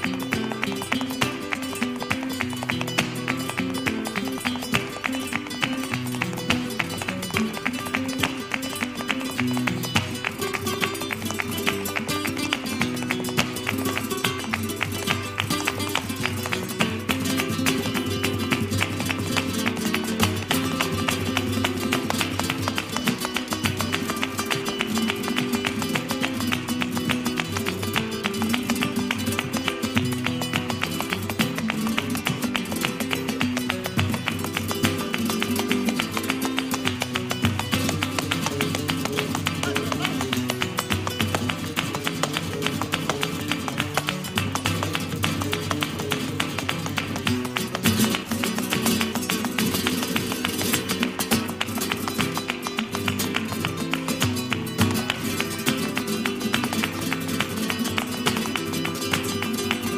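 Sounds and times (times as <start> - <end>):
flamenco guitar playing: 0.0 - 59.9
heeled shoes tapping floor: 0.0 - 59.9.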